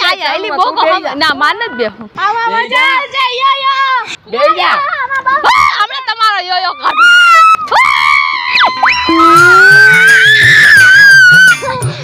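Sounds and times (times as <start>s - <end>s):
swooping pitch slides: 8.9s - 10.6s
held high tone: 9.0s - 12.0s
music: 9.1s - 12.0s.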